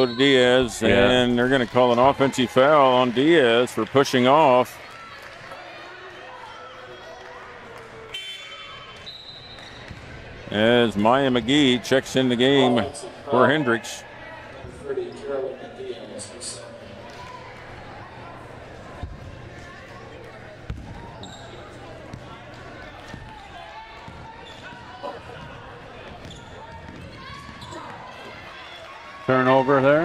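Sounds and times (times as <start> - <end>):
murmur of voices echoing: 9.8 - 30.0.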